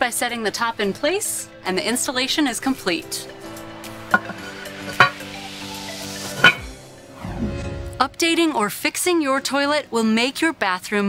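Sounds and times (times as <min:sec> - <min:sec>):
background music: 0:00.0 - 0:11.0
toilet tank lid clinking: 0:04.1 - 0:05.2, 0:06.3 - 0:06.7.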